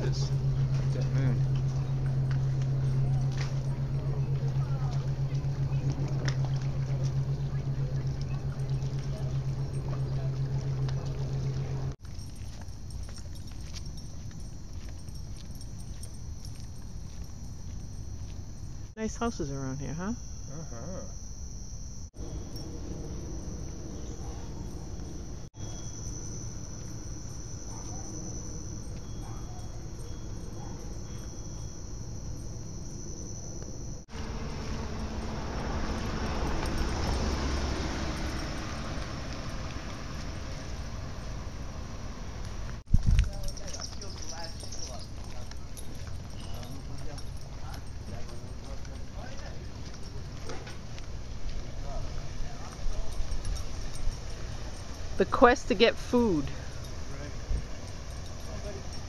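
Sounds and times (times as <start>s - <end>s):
indistinct voices talking: 0.0s - 12.0s, 19.0s - 21.3s, 43.2s - 50.8s, 51.6s - 59.0s
low background rumble: 0.0s - 43.1s
high-pitched insect chorus: 0.0s - 59.0s.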